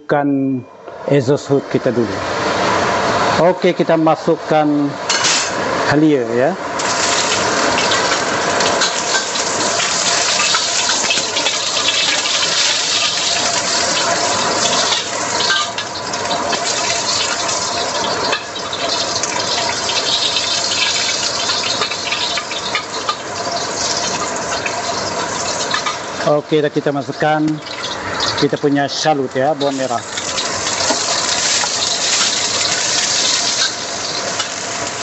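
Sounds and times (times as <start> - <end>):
range hood fan running: 0.8 - 35.0
ginger sizzling in hot oil: 2.2 - 35.0
metal spatula scraping pan: 5.1 - 5.6, 6.9 - 19.0.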